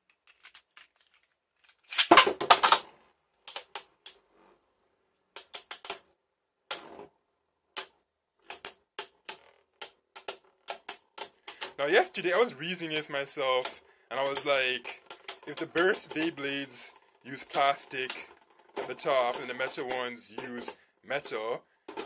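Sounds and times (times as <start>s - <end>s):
plastic tops clacking: 0.0s - 4.2s, 7.8s - 22.0s
spinning top launcher rattle: 11.8s - 21.4s.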